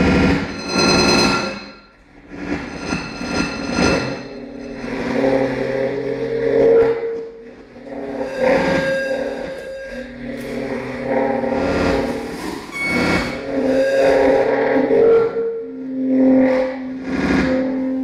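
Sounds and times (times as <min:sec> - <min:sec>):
low droning tones: 0:00.0 - 0:18.0.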